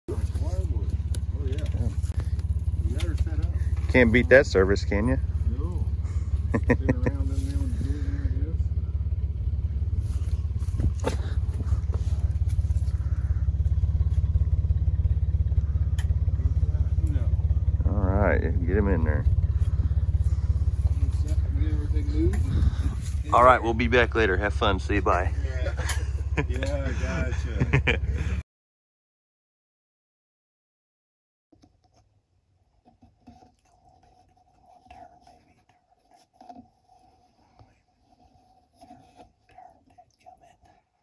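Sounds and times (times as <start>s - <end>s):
car engine idling: 0.1s - 28.4s.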